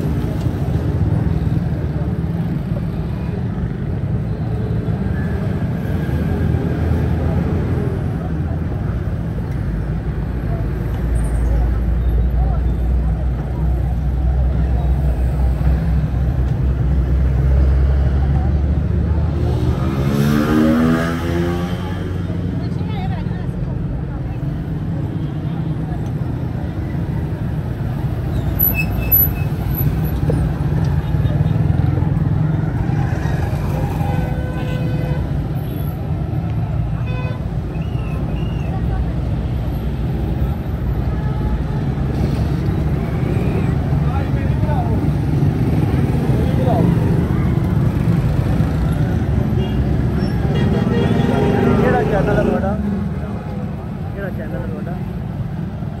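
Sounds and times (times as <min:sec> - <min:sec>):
people's voices: 0:00.0 - 0:56.0
street traffic: 0:00.0 - 0:56.0.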